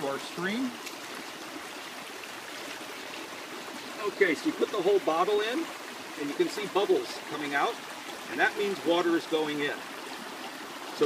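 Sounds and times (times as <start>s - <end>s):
shallow creek running: 0.0s - 11.0s.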